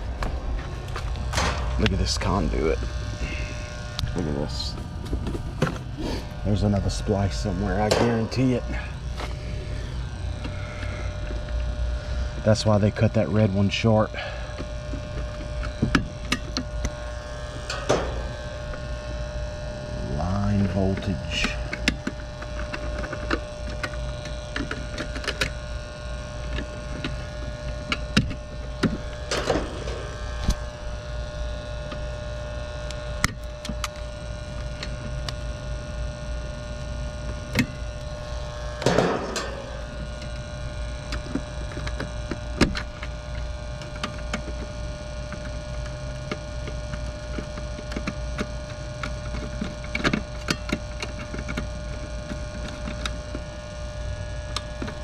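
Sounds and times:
steady electrical hum: 0.0s - 55.0s
screwdriver clicks and taps in metal box: 20.9s - 25.5s, 27.9s - 29.5s, 41.1s - 44.7s, 46.3s - 53.4s.

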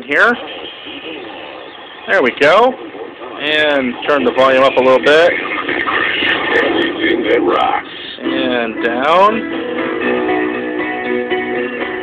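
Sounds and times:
radio playing music: 0.0s - 12.0s.

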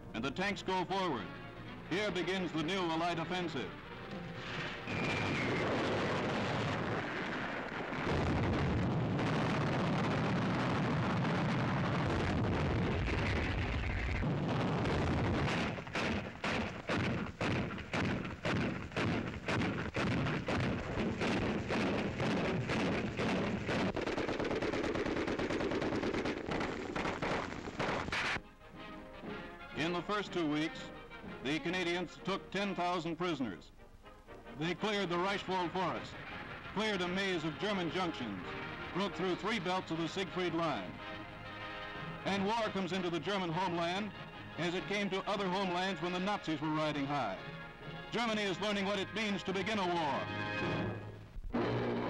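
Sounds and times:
artillery gunfire: 3.0s - 28.4s
rapid separate gunshots: 4.5s - 28.4s.

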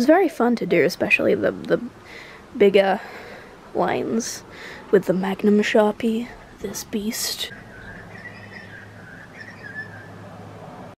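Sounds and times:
steady low hum: 0.4s - 11.0s.

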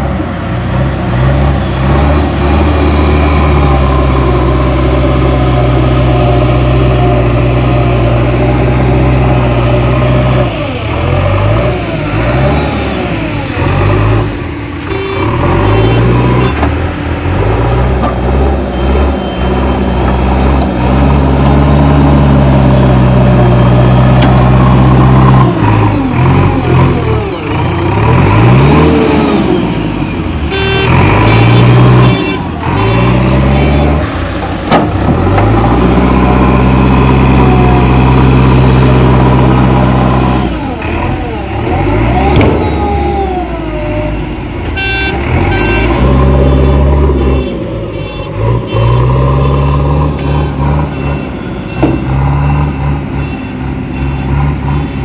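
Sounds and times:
diesel engine running under load: 0.0s - 55.0s.

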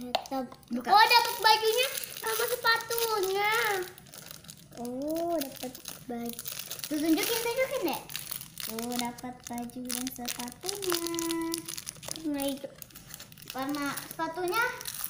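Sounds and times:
plastic wrapper crinkling: 0.0s - 15.0s.

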